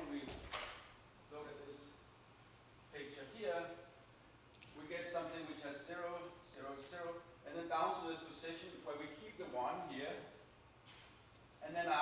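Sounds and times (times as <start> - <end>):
man's voice: 11.6 - 12.0.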